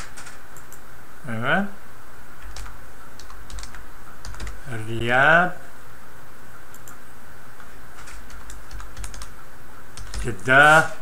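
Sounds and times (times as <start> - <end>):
keyboard typing: 0.0 - 0.8, 2.4 - 4.6, 8.0 - 9.3, 9.9 - 10.5.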